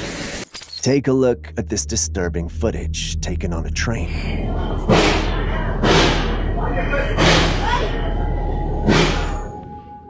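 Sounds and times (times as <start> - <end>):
train rumbling: 1.2 - 9.6.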